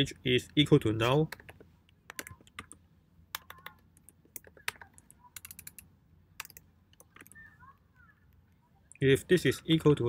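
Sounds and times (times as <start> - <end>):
keyboard key clicks: 1.3 - 5.8.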